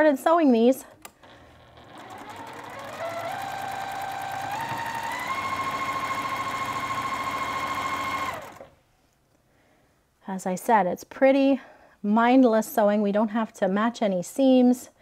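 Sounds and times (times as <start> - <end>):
sewing machine motor whine: 0.9 - 8.8.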